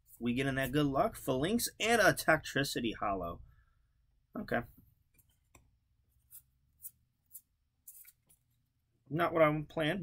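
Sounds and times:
cards sliding against each other: 6.2s - 8.4s.

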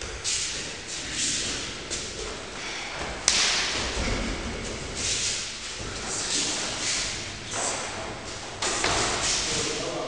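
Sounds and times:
kick slapping into body: 3.0s - 7.9s.

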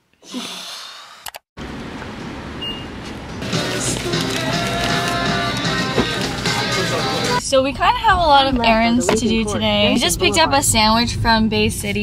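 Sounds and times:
traffic road noise hum: 1.6s - 7.4s.

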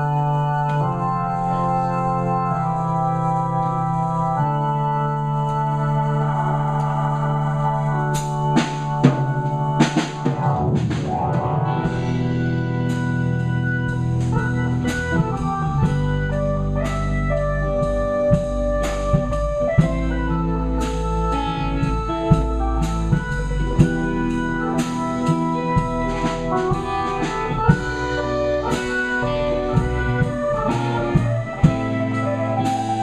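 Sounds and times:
electric guitars: 0.0s - 33.0s
organ-like keyboard chords: 0.0s - 33.0s
drum kit: 5.2s - 33.0s.

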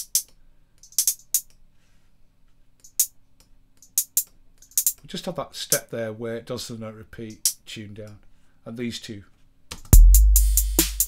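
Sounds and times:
drum machine closed hi-hats: 9.7s - 11.0s.

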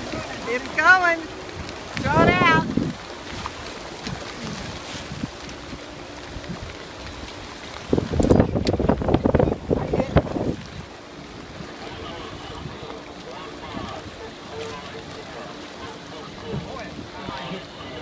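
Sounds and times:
boat motor humming: 0.0s - 18.0s
water washing around boat: 0.0s - 18.0s
wind buffeting microphone: 0.0s - 18.0s.

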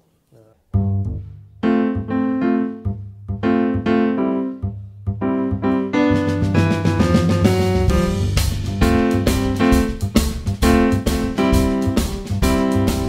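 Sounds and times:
bass line: 0.7s - 13.0s
electric piano chord stabs: 5.3s - 13.0s.

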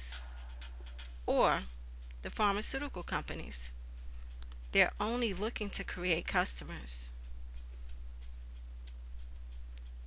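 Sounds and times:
steady low hum: 0.0s - 10.0s
light ticks: 0.8s - 10.0s.

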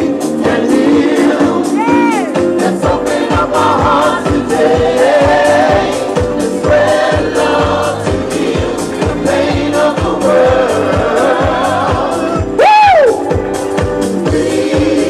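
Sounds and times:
group of people singing: 0.0s - 12.6s, 13.9s - 15.0s
dance music backing track: 0.0s - 15.0s
steady kick drum beat: 0.0s - 15.0s.

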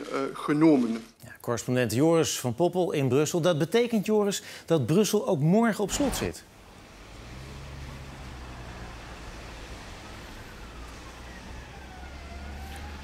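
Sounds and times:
traffic rumble: 5.8s - 13.0s
faint emergency siren wailing: 6.9s - 13.0s.

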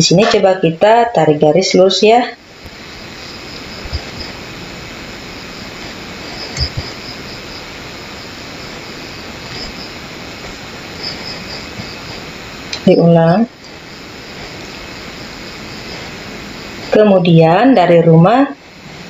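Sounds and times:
background hiss: 0.0s - 19.0s
crickets chirping: 0.0s - 19.0s.

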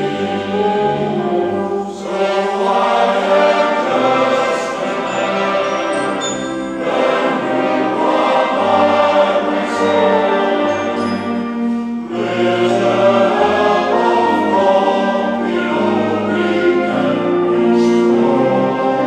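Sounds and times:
male choir singing: 0.0s - 19.0s
wind band playing: 0.0s - 19.0s.

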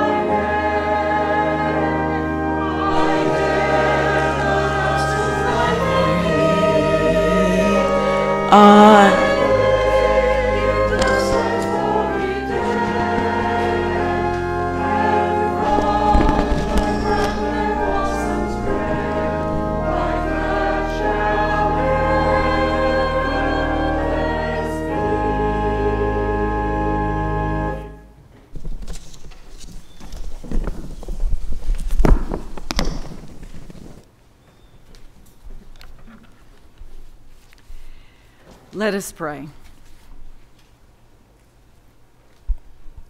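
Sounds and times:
church choir singing: 0.0s - 28.1s
low sustained bass notes: 0.0s - 28.1s.

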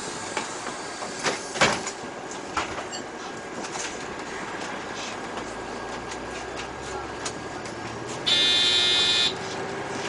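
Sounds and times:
bus running noise: 0.0s - 10.0s
electronic buzzer: 8.3s - 9.4s.

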